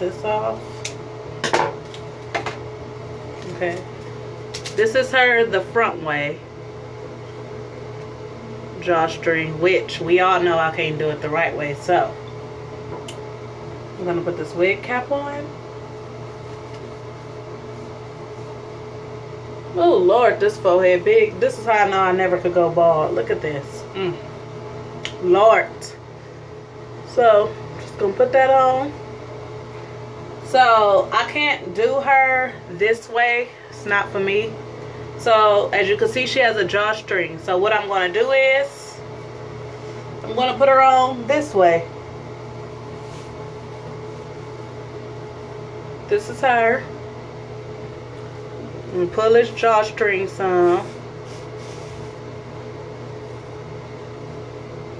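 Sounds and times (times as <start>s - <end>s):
ventilation hum: 0.0s - 54.9s.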